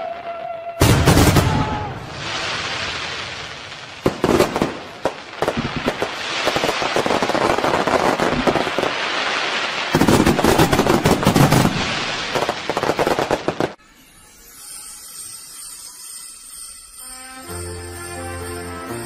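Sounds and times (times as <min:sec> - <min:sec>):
fireworks bursting and crackling: 0:00.0 - 0:14.0.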